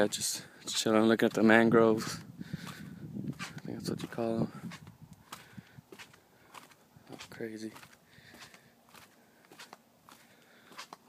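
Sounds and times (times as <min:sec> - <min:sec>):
soft footsteps: 0:02.1 - 0:11.0.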